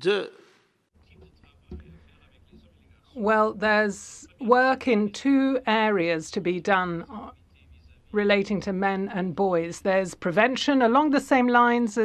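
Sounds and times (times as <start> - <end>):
faint distant speech: 1.0 - 9.1
low steady hum: 1.0 - 11.9.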